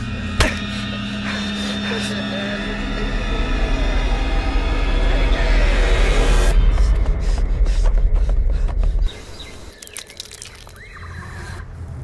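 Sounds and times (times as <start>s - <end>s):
low horror score drone: 0.0s - 9.1s.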